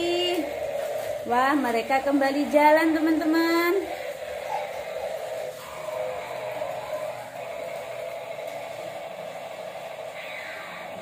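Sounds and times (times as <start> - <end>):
toy car motors whirring: 0.0 - 11.0.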